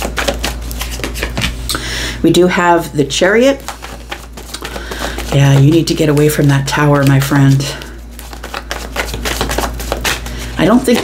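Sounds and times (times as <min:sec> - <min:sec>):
cards shuffled and flicked: 0:00.0 - 0:01.6, 0:03.6 - 0:11.0.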